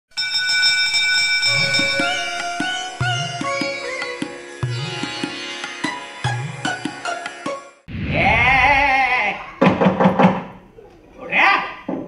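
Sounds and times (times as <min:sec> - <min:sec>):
bell ringing: 0:00.1 - 0:04.9
theme music: 0:01.4 - 0:09.2.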